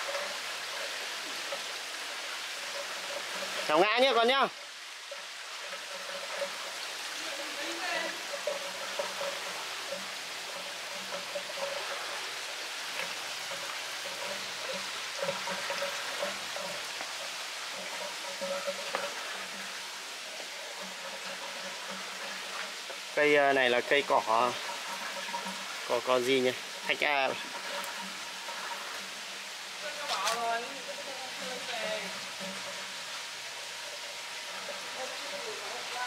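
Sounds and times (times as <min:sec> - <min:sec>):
water splashing into a pond: 0:00.0 - 0:36.0.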